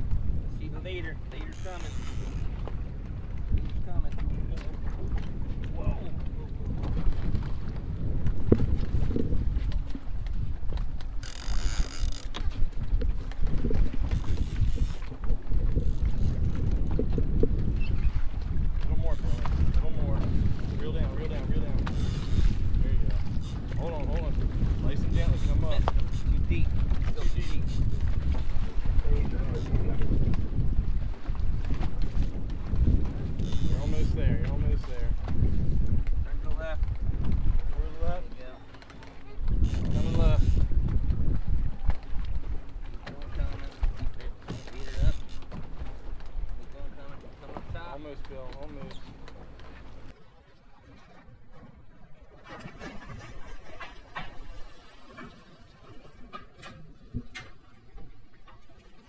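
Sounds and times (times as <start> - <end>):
boat engine rumble: 0.0 - 59.0
water washing along hull: 0.0 - 59.0
wind buffeting microphone: 0.0 - 59.0.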